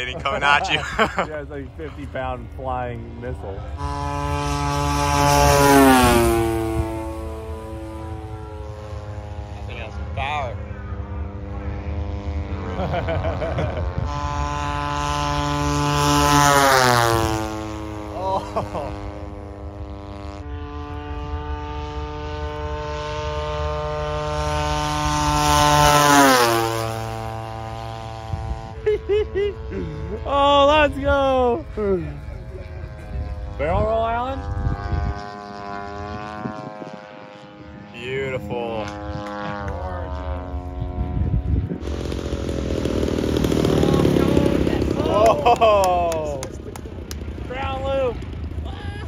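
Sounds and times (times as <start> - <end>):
model airplane propeller drone: 0.0 - 49.0.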